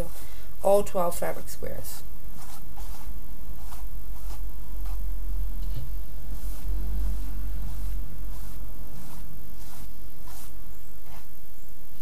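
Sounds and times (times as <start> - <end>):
steady low hum: 0.0 - 12.0
paintbrush scratching on table: 2.3 - 11.4.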